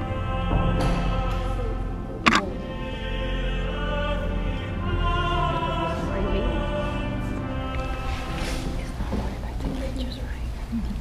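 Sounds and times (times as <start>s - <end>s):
quiet indistinct speech: 7.9s - 11.0s.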